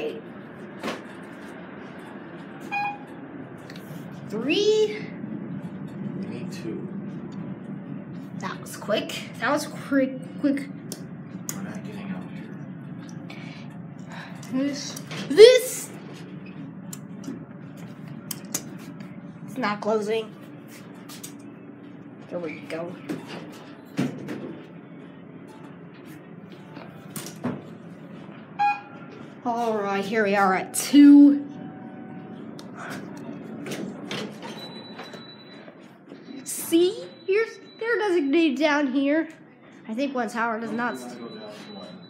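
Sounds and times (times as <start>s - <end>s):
elevator hum: 0.0s - 42.0s
elevator doors sliding open: 22.5s - 24.8s, 31.6s - 35.8s.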